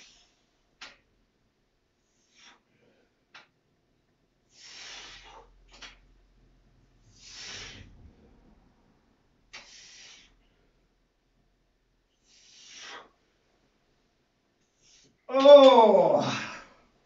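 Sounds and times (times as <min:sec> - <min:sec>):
man breathing hard: 0:02.0 - 0:03.3, 0:04.5 - 0:05.6, 0:07.0 - 0:08.2, 0:09.5 - 0:10.8, 0:12.1 - 0:13.3
forceful exhalations: 0:04.5 - 0:05.9, 0:07.0 - 0:08.4.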